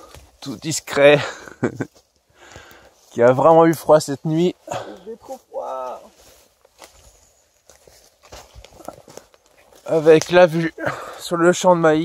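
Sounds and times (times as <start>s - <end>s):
footsteps crunching on dry leaves: 1.8s - 11.2s.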